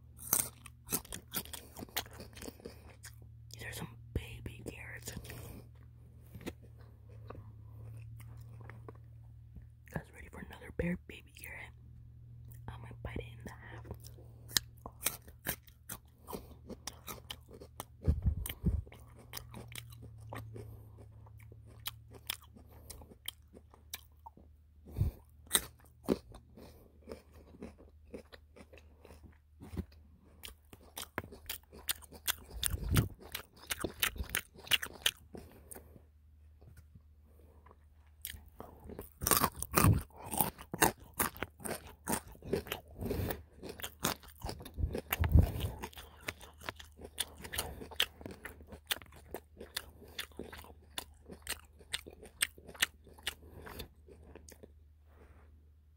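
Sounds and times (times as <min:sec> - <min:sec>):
crisp carrot crunches: 0:00.0 - 0:03.8, 0:04.7 - 0:09.1, 0:13.8 - 0:36.0, 0:37.7 - 0:54.8
wet chewing: 0:00.1 - 0:03.9, 0:04.6 - 0:09.2, 0:13.6 - 0:54.8.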